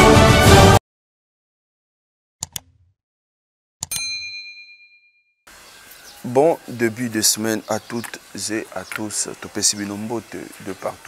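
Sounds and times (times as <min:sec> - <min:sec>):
notification bell ding: 0:03.8 - 0:05.3.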